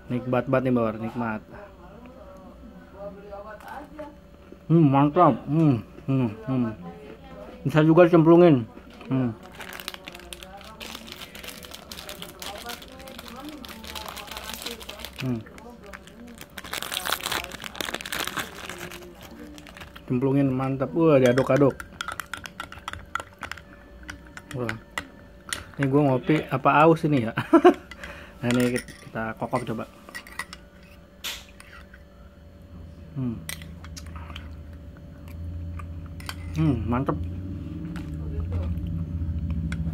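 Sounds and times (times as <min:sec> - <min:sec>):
faint low room hum: 0:00.0 - 0:39.9
plastic wrapper crinkling: 0:09.4 - 0:20.7.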